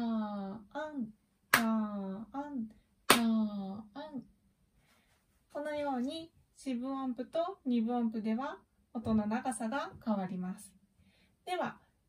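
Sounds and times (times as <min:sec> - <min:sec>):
hand claps: 0:01.5 - 0:01.7, 0:03.1 - 0:03.3.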